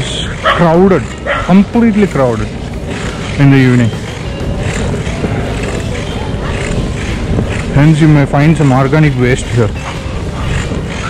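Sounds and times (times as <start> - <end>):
skateboard wheels rolling on asphalt: 0.0 - 11.0
wind on microphone: 0.0 - 11.0.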